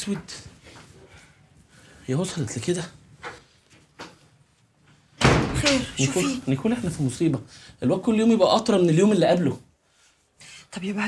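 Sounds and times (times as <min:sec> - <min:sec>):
door banging shut: 0:05.2 - 0:06.0.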